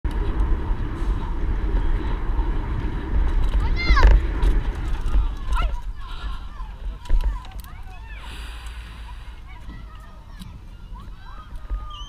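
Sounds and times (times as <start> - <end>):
bicycle tyres rolling on concrete: 0.0 - 12.0
wind buffeting microphone: 0.1 - 12.0.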